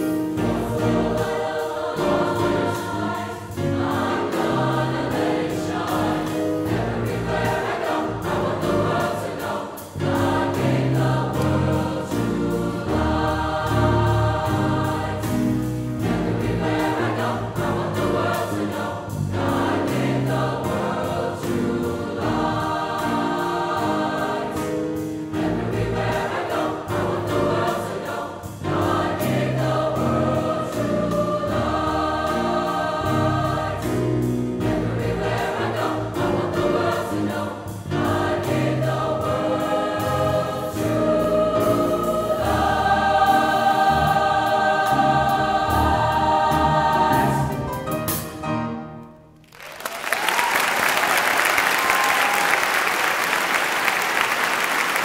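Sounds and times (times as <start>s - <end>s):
choir singing sustained chords: 0.0s - 47.8s
piano accompaniment: 0.0s - 49.6s.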